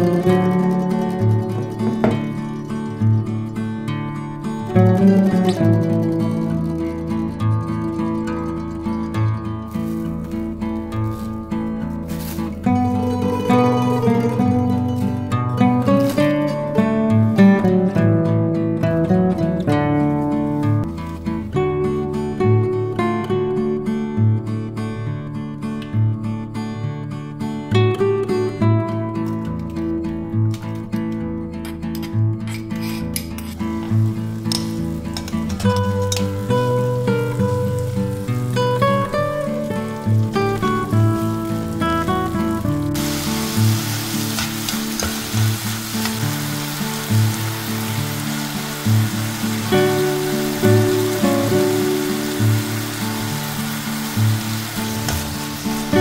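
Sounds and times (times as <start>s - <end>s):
gentle background music: 0.0s - 56.0s
onion and beef sizzling in oil: 9.7s - 15.3s, 33.7s - 56.0s.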